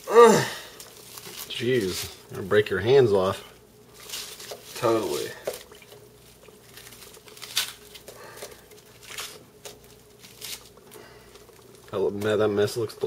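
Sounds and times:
faint steady hum: 0.0s - 13.0s
soft crunches of food: 3.9s - 12.3s.

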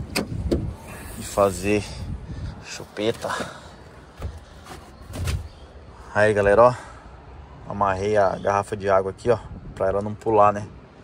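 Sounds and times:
soft knocks and rustles: 3.1s - 5.6s
dull bump: 3.4s - 5.6s.

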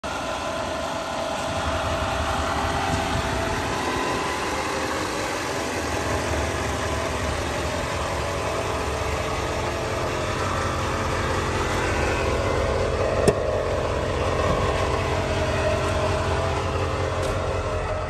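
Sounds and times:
truck engine idling: 0.0s - 18.0s.

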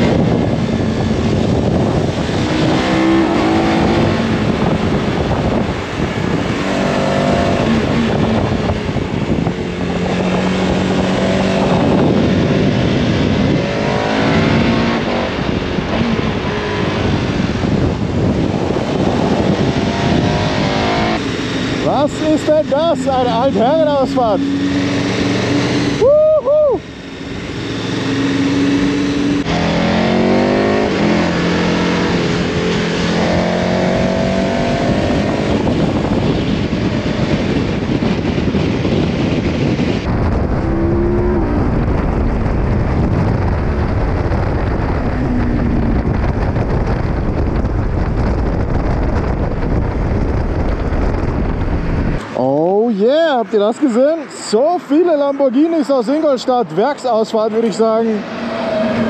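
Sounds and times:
motorcycle engine accelerating: 0.0s - 52.8s
wind rushing over camera: 0.0s - 55.2s.

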